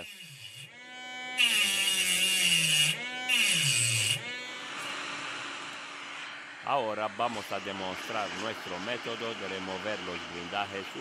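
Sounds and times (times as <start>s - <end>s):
rotary tool grinding metal: 0.0s - 6.5s.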